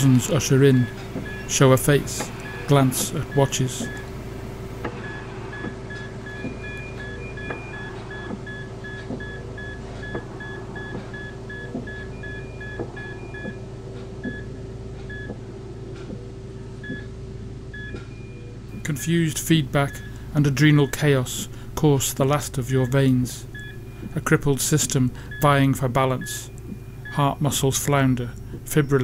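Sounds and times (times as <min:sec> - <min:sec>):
heart monitor beeps: 0:00.0 - 0:15.5, 0:16.8 - 0:21.6, 0:22.5 - 0:29.0
steady hum and low rumble: 0:00.0 - 0:29.0.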